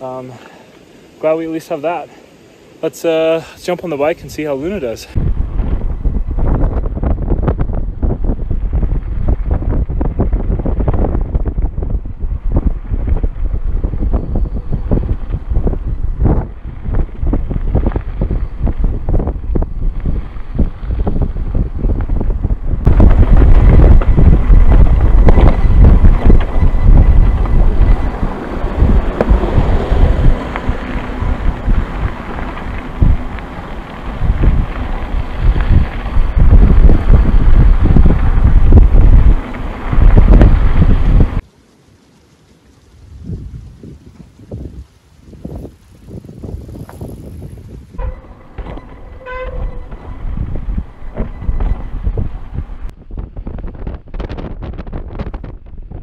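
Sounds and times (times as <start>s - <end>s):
wind buffeting microphone: 4.1s - 41.5s, 42.1s - 56.0s
bike knocking and rattling: 5.3s - 41.4s, 42.7s - 56.0s.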